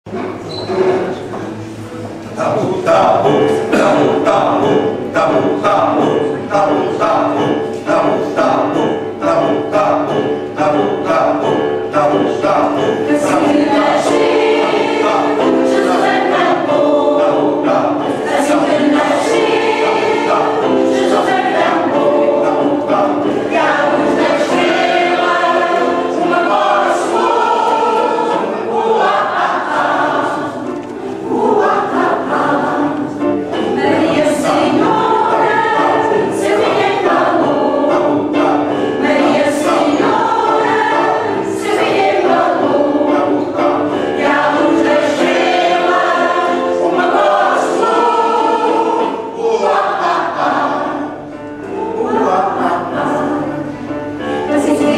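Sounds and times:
mixed choir singing a carol: 0:00.1 - 0:54.9.

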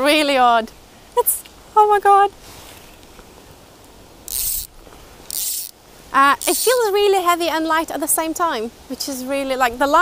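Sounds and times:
fly reel ratchet buzzing: 0:04.3 - 0:05.8, 0:06.4 - 0:06.9.

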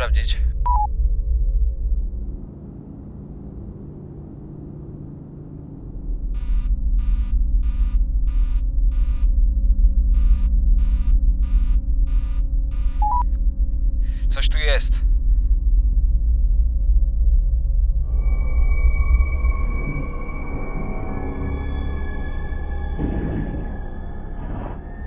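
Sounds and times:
low electronic drone: 0:00.0 - 0:25.0
alarm beeping: 0:06.4 - 0:09.3, 0:10.2 - 0:13.2
short tone: 0:10.2 - 0:13.2.

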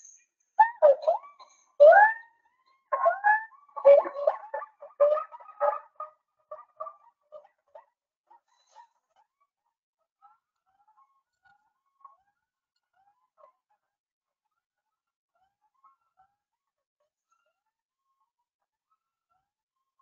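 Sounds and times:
gibbons whooping calls: 0:00.6 - 0:02.3, 0:02.9 - 0:05.8.

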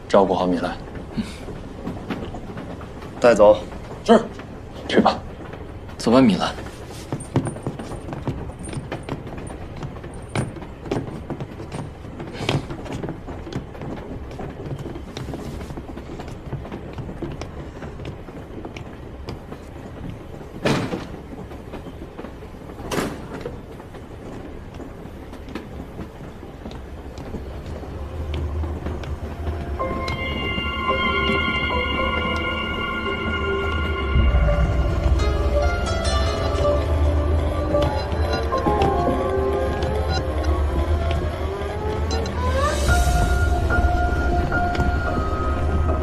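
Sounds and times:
film score: 0:00.0 - 0:46.0
railway carriage rumbling: 0:00.0 - 0:46.0.

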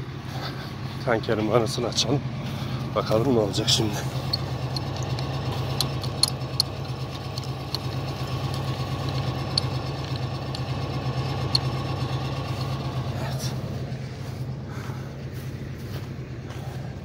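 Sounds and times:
engine idling: 0:00.0 - 0:17.0
faint clicks: 0:04.2 - 0:12.8.

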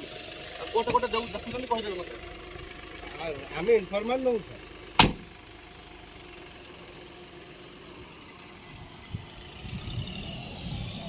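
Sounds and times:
car engine idling: 0:00.0 - 0:11.0
vehicle pulling away: 0:00.0 - 0:11.0
car door slamming: 0:04.9 - 0:05.3.

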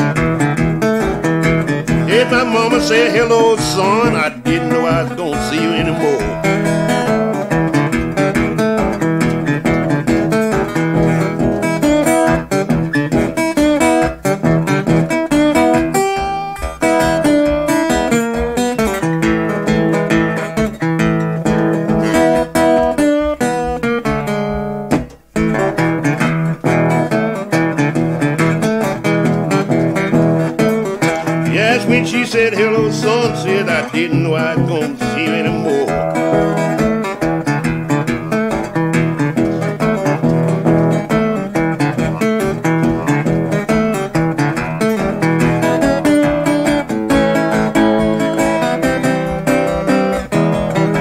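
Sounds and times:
acoustic blues guitar: 0:00.0 - 0:51.0
person singing: 0:01.8 - 0:06.7, 0:31.1 - 0:36.8, 0:41.9 - 0:43.6.

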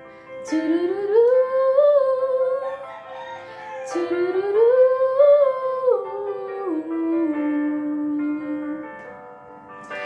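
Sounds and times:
instrumental backing music: 0:00.0 - 0:10.0.

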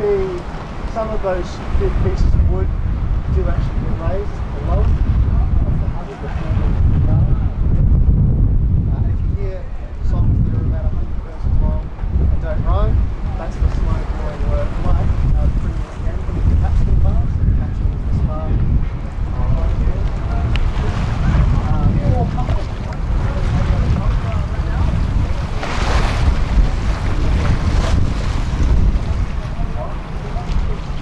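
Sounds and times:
water washing along ship hull: 0:00.0 - 0:31.0
wind buffeting microphone: 0:00.0 - 0:31.0.

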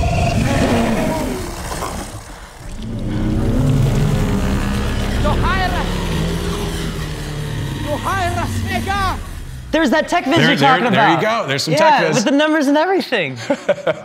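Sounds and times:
heavy low rumble: 0:00.0 - 0:10.4
film music: 0:00.0 - 0:11.1.

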